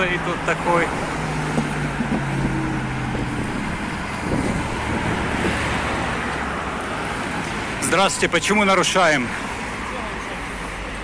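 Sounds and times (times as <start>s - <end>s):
cars driving past: 0.0s - 11.0s.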